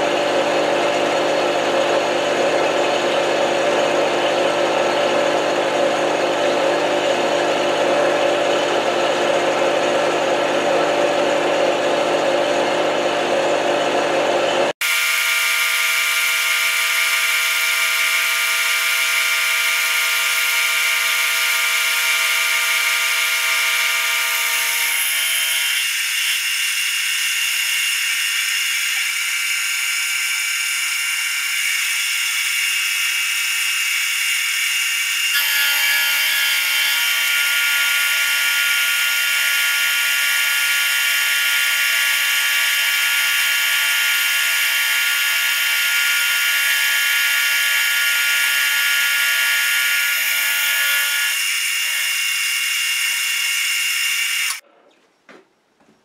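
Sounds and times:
milling machine whine: 0.0s - 54.6s.

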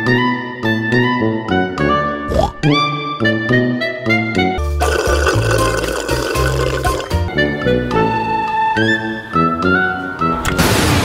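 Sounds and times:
background music with bass line: 0.0s - 8.9s
drink slurped through straw: 4.8s - 7.2s.

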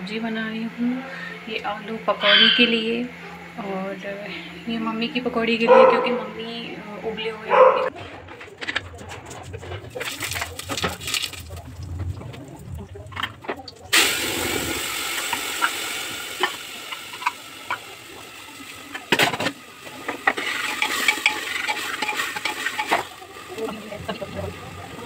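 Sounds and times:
food sizzling in hot oil: 13.9s - 25.0s
utensils clanking on pan: 19.0s - 24.2s.

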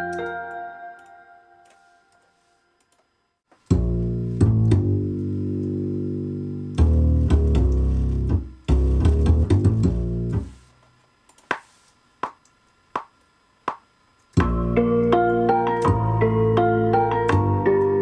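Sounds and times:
plucked upright bass notes: 3.7s - 10.5s, 14.4s - 18.0s.

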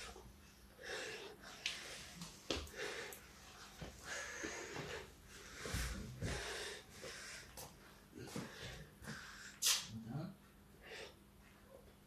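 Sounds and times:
boy breathing hard: 0.0s - 9.7s.

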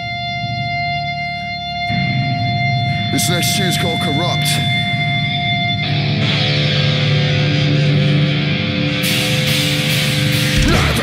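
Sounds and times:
electric guitar droning: 0.0s - 11.0s.

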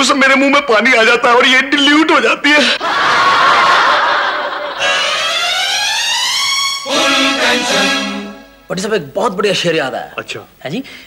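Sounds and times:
rising electronic tone: 4.8s - 8.5s.

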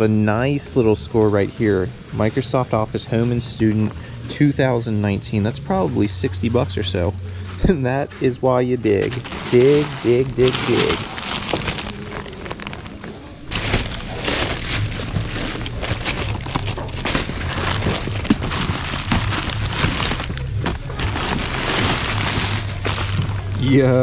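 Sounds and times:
background music: 0.0s - 24.0s
plastic packaging crinkling: 9.0s - 23.6s.

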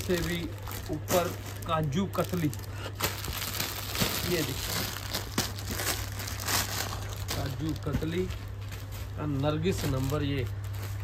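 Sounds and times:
fabric rustling against plastic: 0.0s - 11.0s
plastic packaging crinkling: 0.0s - 11.0s.

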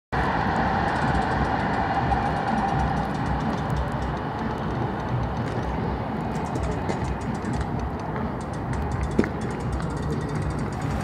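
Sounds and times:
held train tone: 0.2s - 5.3s
train rumble: 0.2s - 11.0s.

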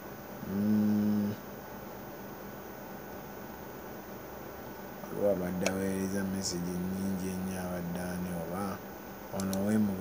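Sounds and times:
man humming mmm: 0.4s - 1.4s.

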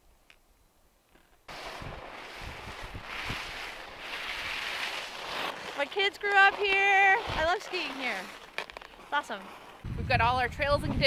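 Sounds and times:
wind rushing on microphone: 1.5s - 3.8s, 9.8s - 11.0s.

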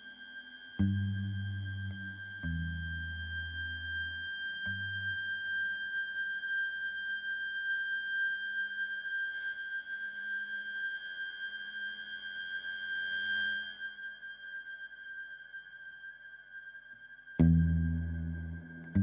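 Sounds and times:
ambient electric guitar drone: 0.0s - 7.4s, 11.8s - 19.0s
low guitar notes: 17.4s - 19.0s.

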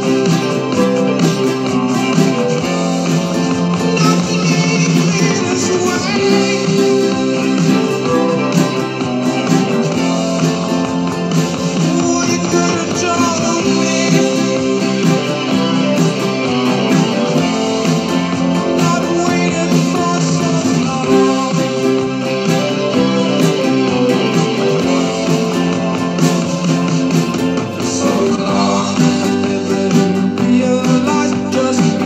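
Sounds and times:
classical guitar strumming: 0.0s - 32.0s.

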